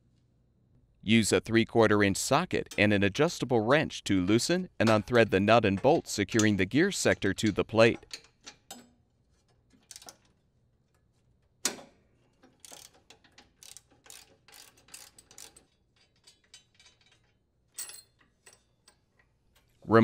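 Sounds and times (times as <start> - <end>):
socket ratchet clicking: 12.5 - 17.2.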